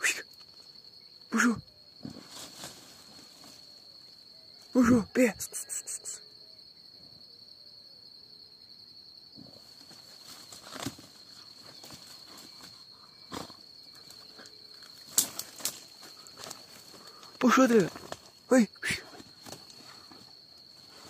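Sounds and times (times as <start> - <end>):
high insect tone: 0.0 - 21.0
rustling in brush: 2.1 - 3.8
dry twigs snapping: 14.1 - 18.3.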